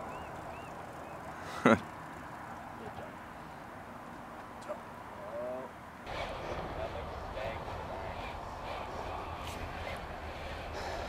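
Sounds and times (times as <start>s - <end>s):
rushing background noise: 0.0s - 11.0s
faint voices: 4.7s - 11.0s.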